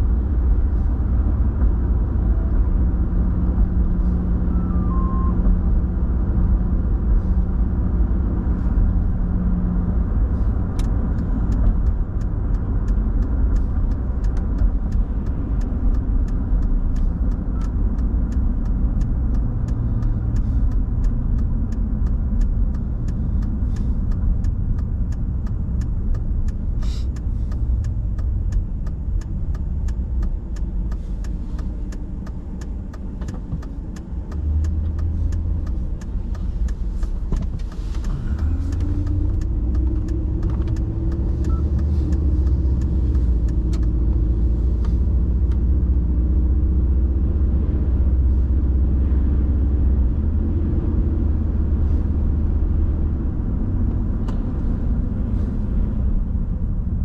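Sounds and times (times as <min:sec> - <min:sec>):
low hum: 0:00.0 - 0:33.0, 0:33.6 - 0:57.0
vehicle cabin road rumble: 0:00.0 - 0:57.0
faint sharp ticks: 0:10.8 - 0:45.7.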